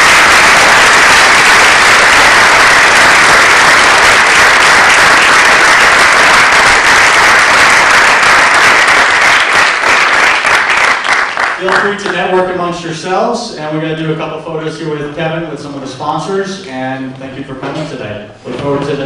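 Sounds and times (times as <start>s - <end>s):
audience applauding: 0.0s - 12.2s.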